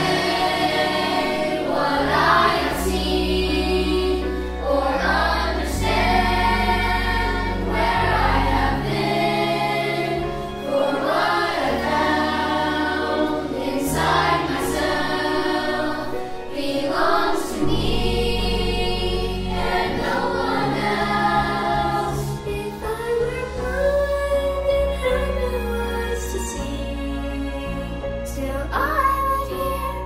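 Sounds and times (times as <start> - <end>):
children's choir singing: 0.0 - 27.5
sustained low accompaniment notes: 0.0 - 30.0.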